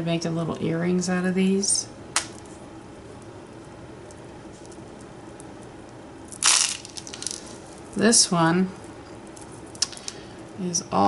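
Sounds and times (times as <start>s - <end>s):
beads clattering in plastic tub: 6.3s - 7.6s.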